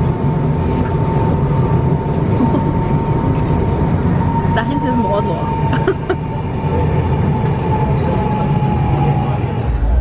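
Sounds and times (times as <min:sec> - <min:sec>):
crowd voices: 0:02.0 - 0:10.0.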